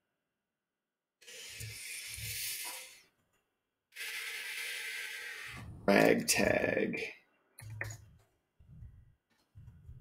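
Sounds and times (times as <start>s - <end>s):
person breathing: 4.0s - 5.9s.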